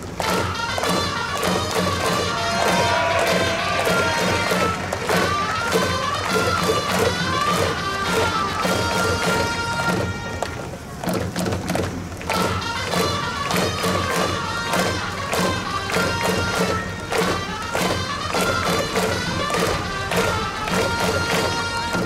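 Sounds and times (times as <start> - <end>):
brass-style melody: 0.1 - 11.0, 12.3 - 22.0
steady drum beat: 0.3 - 10.3.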